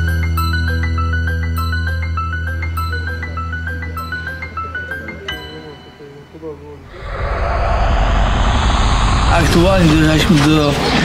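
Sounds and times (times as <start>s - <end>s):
outdoor rumbling noise: 6.9s - 11.0s
man's voice: 9.3s - 11.0s.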